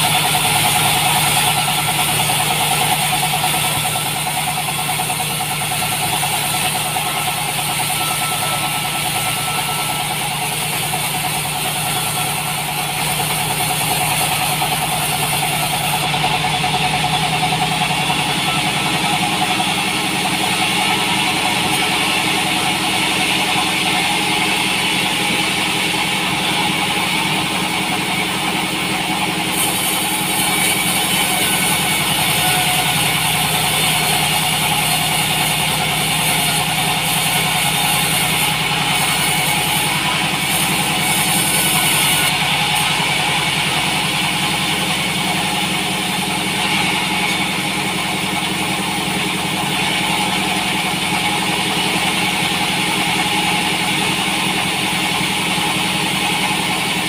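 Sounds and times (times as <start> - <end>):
bandsaw sawing log: 0.0 - 57.0.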